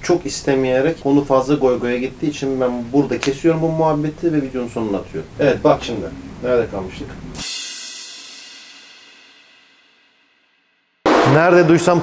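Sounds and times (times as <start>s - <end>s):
cymbal crash: 7.3s - 12.0s.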